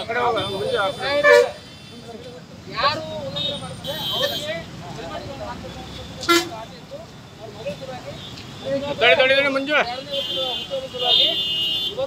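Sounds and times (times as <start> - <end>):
vehicle horns: 0.0 - 2.3, 3.2 - 4.6, 6.0 - 6.7, 9.9 - 12.0
people talking: 0.0 - 12.0.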